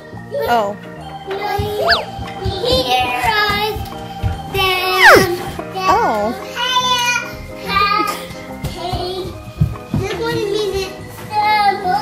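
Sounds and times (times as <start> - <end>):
music with steady beat: 0.9 - 6.5.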